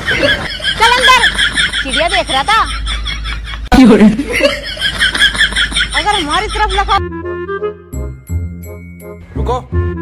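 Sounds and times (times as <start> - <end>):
person chuckling and laughing: 0.0 - 7.0.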